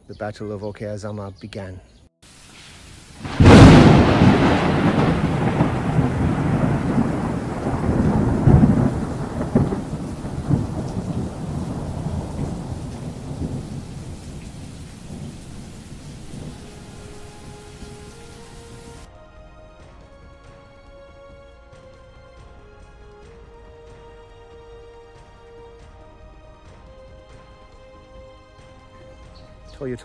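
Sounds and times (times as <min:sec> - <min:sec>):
heavy rain: 0:02.2 - 0:19.1
thunder crack and rumble: 0:03.2 - 0:19.1.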